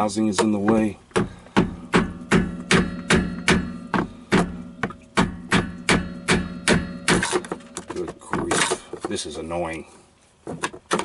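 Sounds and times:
hammer striking metal: 1.2 - 8.8.

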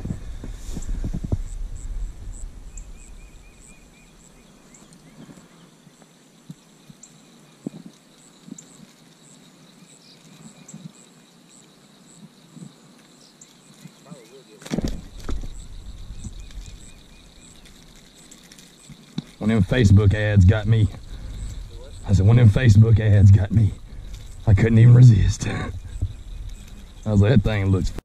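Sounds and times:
microphone handling rumble: 0.0 - 4.0, 14.7 - 17.4, 19.3 - 28.0.

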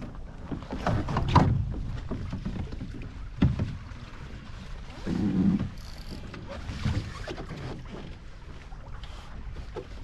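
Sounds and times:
water splashing against hull: 0.0 - 10.0
wind rumble on microphone: 0.0 - 10.0.

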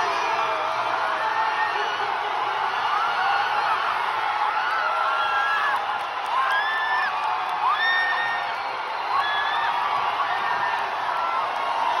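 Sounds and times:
crowd cheering and shouting: 0.0 - 12.0
long held whoops: 2.8 - 12.0.

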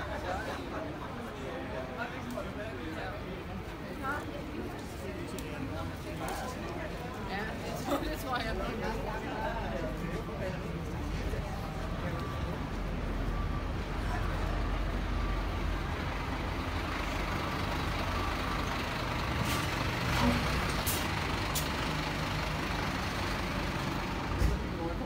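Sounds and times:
diesel truck engine: 8.8 - 25.0.

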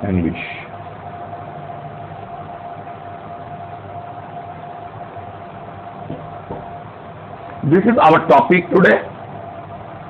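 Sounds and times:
faint high whine: 0.0 - 10.0
room hum and hiss: 0.0 - 10.0.

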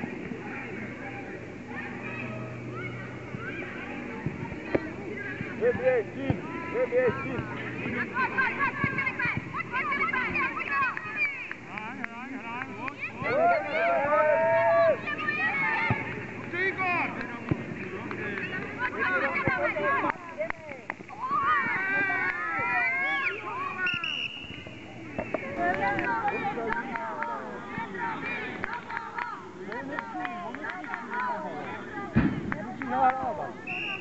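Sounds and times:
children shouting and calling: 0.4 - 4.9, 7.6 - 11.6, 13.0 - 16.2, 21.1 - 24.0, 25.4 - 32.4.

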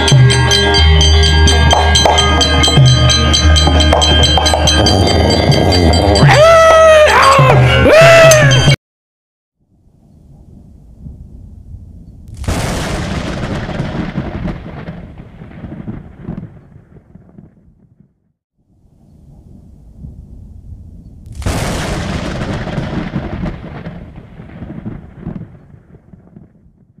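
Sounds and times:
thunder rumble and clap: 10.5 - 18.0, 21.2 - 27.0.

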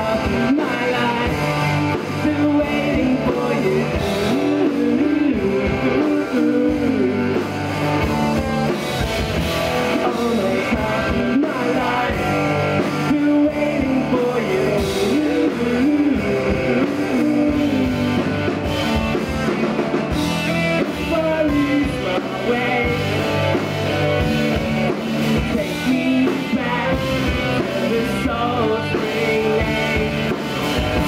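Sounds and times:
drum kit: 0.0 - 31.0
electric guitars: 0.0 - 31.0.

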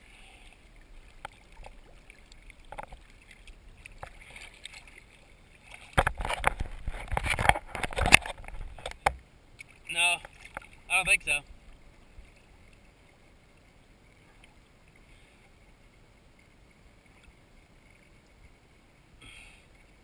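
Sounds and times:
water splashing and sloshing: 0.0 - 20.0.

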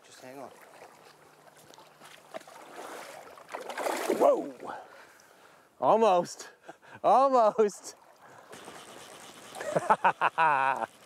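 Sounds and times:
fish thrashing and splashing: 0.6 - 4.2
man shouting in surprise: 4.1 - 4.6.

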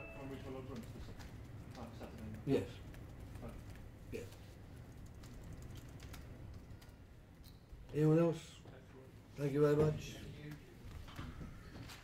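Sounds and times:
computer keyboard typing: 0.0 - 7.0
low room hum: 0.0 - 12.0.

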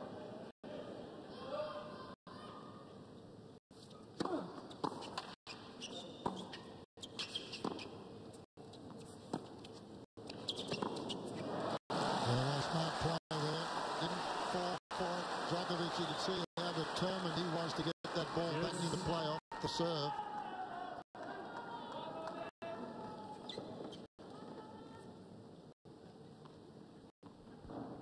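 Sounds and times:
crowd applause and cheering: 11.9 - 22.5.

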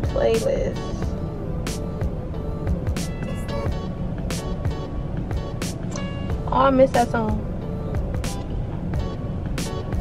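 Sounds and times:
car rumbling on road: 0.0 - 10.0
song on car stereo: 0.0 - 10.0.

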